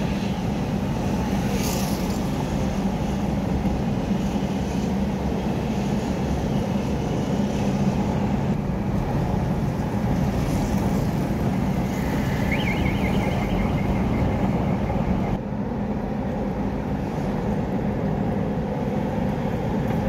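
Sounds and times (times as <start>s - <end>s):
road noise: 0.0s - 20.0s
vehicle engine hum: 0.0s - 20.0s
faint high chirp: 12.3s - 15.4s.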